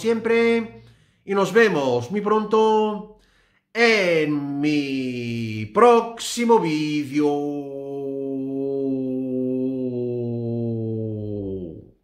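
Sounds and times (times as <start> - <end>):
man singing long low vowel: 6.6 - 12.0.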